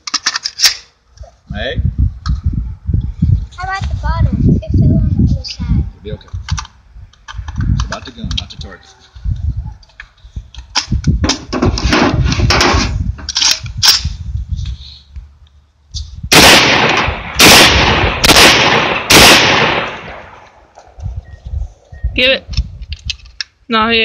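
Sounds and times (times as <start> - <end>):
gun handling clicks and knocks: 0.0 - 0.8, 6.3 - 8.5, 9.8 - 11.8, 13.2 - 14.1, 22.5 - 23.6
shotgun shots: 16.3 - 20.5.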